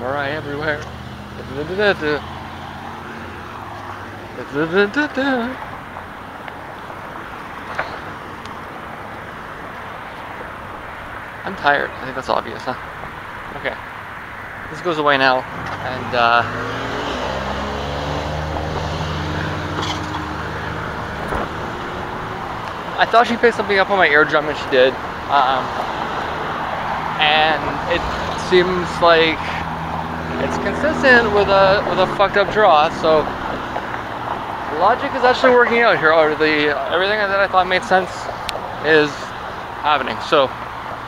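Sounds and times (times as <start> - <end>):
roadside traffic noise: 0.0 - 41.0
vehicle engine hum: 0.0 - 41.0.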